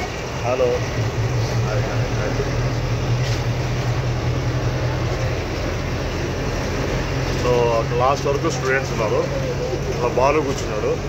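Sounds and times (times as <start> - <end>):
bus engine hum: 0.0 - 11.0
road noise: 0.0 - 11.0.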